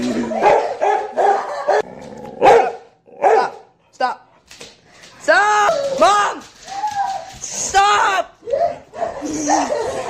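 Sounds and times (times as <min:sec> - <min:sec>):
dog barking: 0:00.4 - 0:03.7.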